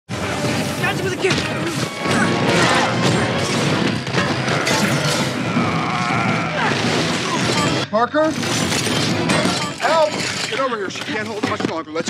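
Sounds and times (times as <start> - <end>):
dramatic film score: 0.1 - 11.8
crashes and impacts: 0.2 - 11.6.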